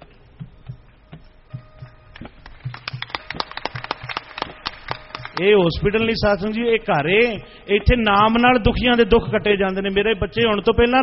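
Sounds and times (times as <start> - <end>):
light taps and low thumps: 0.4 - 3.2.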